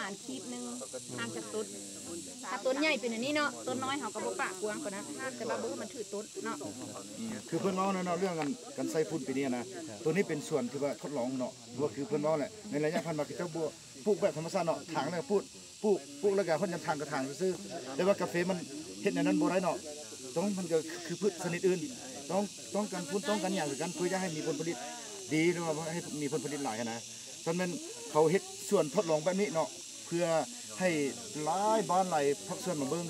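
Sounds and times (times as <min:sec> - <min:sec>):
man talking: 0:06.7 - 0:19.8, 0:20.4 - 0:33.0.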